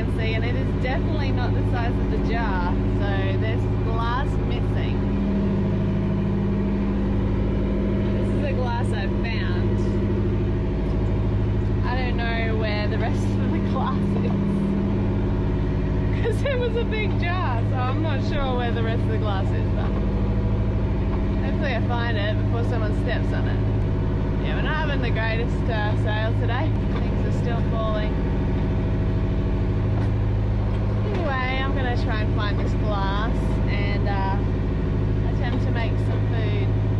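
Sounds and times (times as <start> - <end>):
boat engine humming: 0.0 - 36.9.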